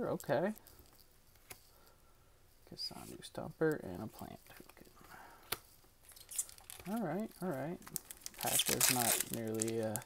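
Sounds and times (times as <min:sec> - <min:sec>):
cards rustling: 0:02.9 - 0:10.0.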